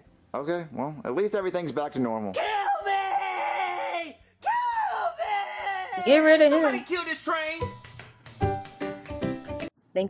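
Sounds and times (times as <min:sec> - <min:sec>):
cartoonish voice screaming: 0:02.4 - 0:06.8.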